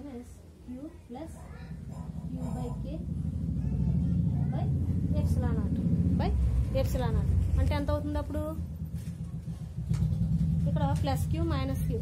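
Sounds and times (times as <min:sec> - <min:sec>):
woman's voice: 0:00.0 - 0:01.5, 0:02.2 - 0:03.1, 0:05.0 - 0:08.7, 0:10.6 - 0:12.0
vehicle engine rumble: 0:01.7 - 0:12.0.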